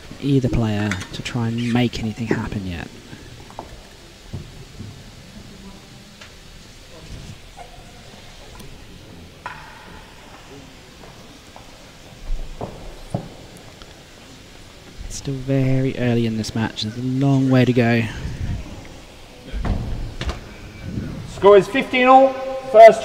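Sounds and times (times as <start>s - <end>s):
low steady hiss: 0.0s - 23.0s
low thumps: 18.2s - 21.4s.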